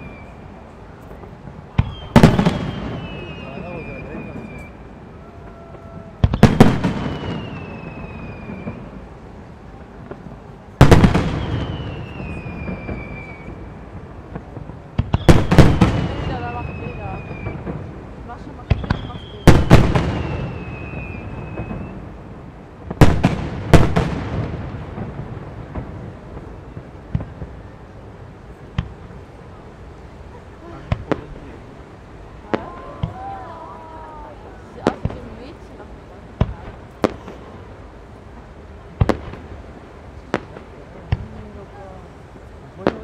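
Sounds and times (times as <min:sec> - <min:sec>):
firework shells booming: 0:01.7 - 0:04.7, 0:05.7 - 0:09.0, 0:10.0 - 0:28.0, 0:30.6 - 0:33.5, 0:39.0 - 0:41.6.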